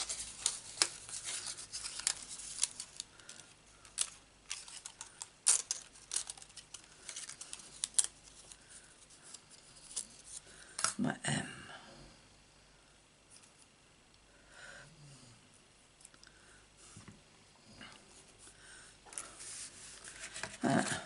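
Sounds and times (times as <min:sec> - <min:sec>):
paper pieces snapping: 0:00.0 - 0:08.4
cardstock rustling: 0:00.0 - 0:10.4, 0:19.2 - 0:21.0.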